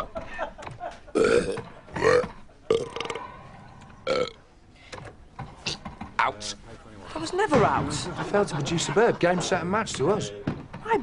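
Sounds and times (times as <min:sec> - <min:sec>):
people burping: 0:01.1 - 0:03.3, 0:04.0 - 0:04.4.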